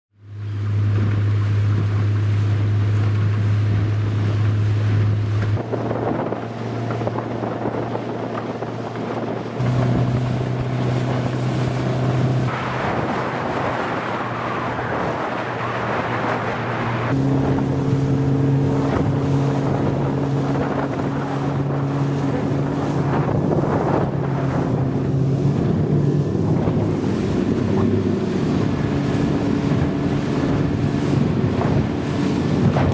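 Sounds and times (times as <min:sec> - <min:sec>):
boat motor running: 0:00.2 - 0:32.9
water and wind rushing: 0:00.2 - 0:32.9.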